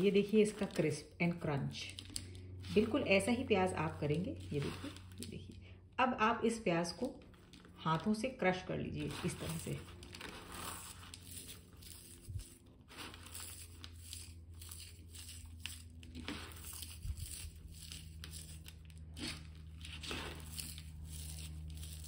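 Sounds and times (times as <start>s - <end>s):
low steady hum: 0.0s - 22.0s
fried onions crackling and crunching: 9.0s - 22.0s.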